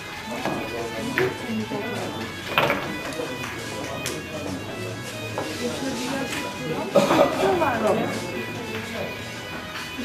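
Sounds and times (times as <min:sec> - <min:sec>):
background music: 0:00.0 - 0:10.0
pool balls clicking: 0:02.2 - 0:04.3.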